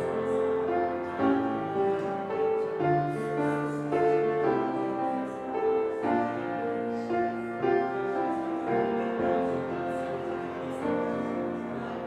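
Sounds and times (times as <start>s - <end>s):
slow keyboard chords: 0.0s - 12.0s.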